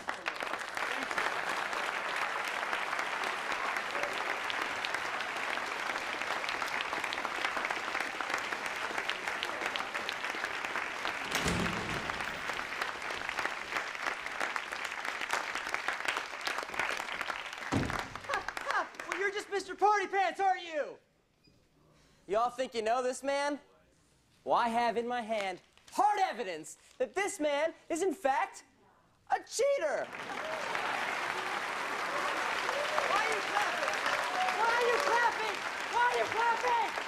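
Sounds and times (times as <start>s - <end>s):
crowd applauding: 0.0s - 19.6s, 30.0s - 37.0s.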